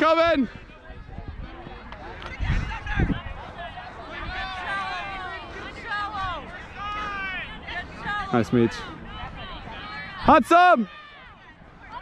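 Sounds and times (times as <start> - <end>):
distant voices calling and shouting: 0.0 - 12.0.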